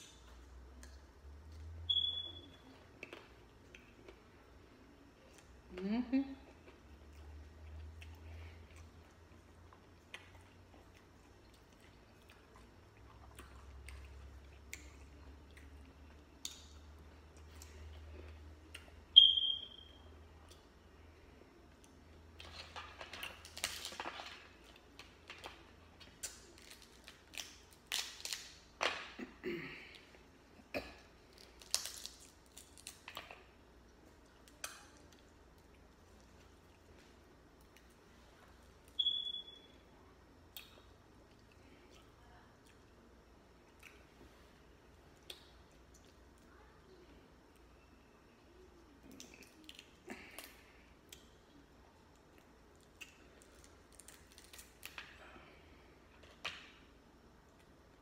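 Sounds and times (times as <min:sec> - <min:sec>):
chewing and wet mouth noises: 0:06.5 - 0:19.0, 0:31.2 - 0:38.6, 0:40.5 - 0:46.6, 0:49.0 - 0:55.2.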